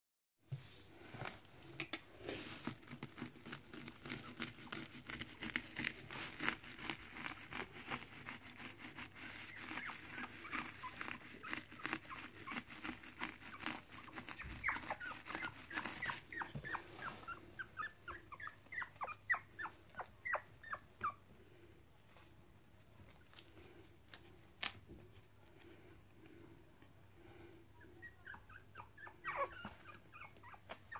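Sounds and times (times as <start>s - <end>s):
puppies whimpering and squeaking: 9.2s - 21.2s, 27.8s - 30.9s
puppy high cries falling in pitch: 28.2s - 30.9s.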